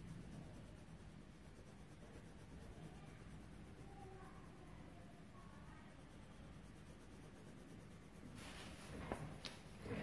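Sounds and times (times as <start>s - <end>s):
pencil scratching on paper: 0.0s - 10.0s.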